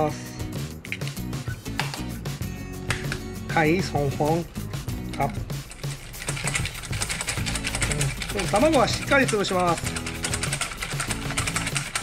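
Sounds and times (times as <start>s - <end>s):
background music: 0.0s - 12.0s
wire whisk beating in metal bowl: 5.2s - 12.0s.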